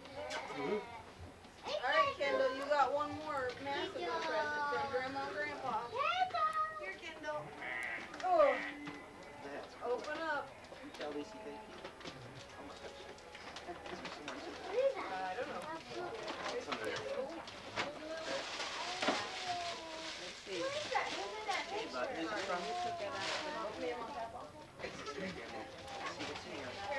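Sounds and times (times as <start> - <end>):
adults and children talking: 0.0 - 26.9
wrapping paper rustling and tearing: 10.9 - 26.9.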